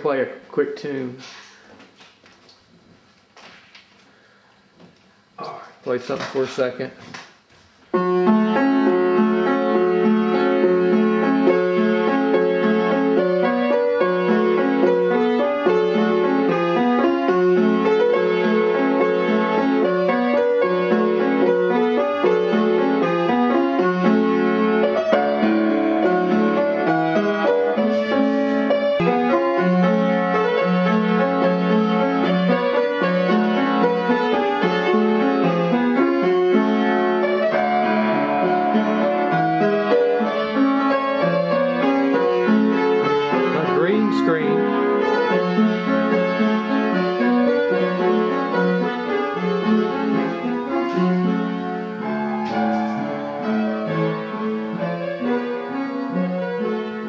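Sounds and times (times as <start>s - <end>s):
upright piano tune: 0.0s - 1.2s, 7.9s - 57.0s.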